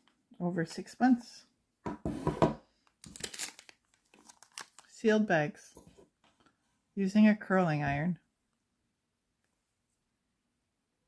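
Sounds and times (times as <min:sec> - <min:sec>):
plastic bag crinkling: 0:03.0 - 0:05.0.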